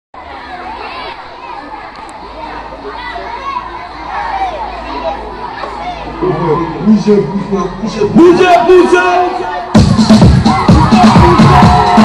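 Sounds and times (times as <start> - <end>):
children chattering: 0.2 - 12.0.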